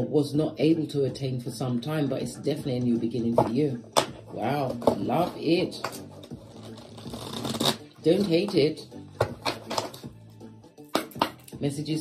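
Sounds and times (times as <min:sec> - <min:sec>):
cards shuffled by hand: 0:06.2 - 0:08.5.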